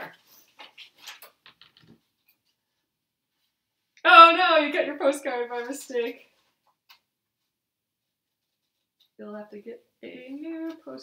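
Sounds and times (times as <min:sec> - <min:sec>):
paper sheets rustling: 0:00.0 - 0:02.6.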